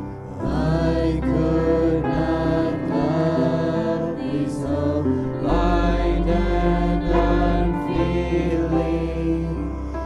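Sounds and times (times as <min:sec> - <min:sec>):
voices singing in harmony: 0:00.0 - 0:10.0.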